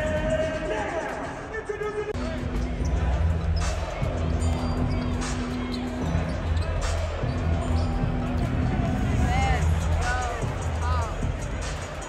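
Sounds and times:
bass-heavy arena music: 0.0s - 12.0s
crowd voices: 0.0s - 12.0s.

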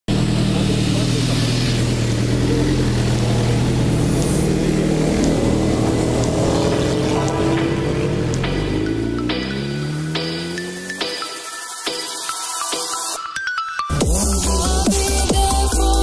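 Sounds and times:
motorcycle engine revving: 0.0s - 11.5s.

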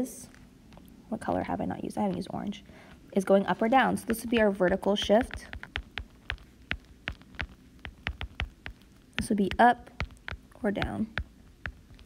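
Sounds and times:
stylus tapping on glass screen: 4.1s - 12.0s.

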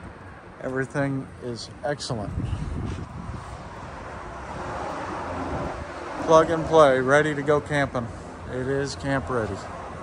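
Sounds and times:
wind buffeting microphone: 0.0s - 6.9s.

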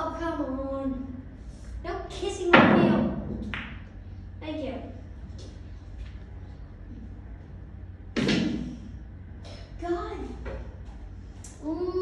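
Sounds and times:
loud thud: 8.2s - 8.9s.

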